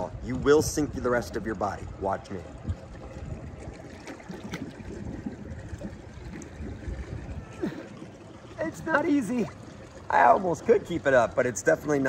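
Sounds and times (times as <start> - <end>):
pool water lapping: 0.0 - 12.0.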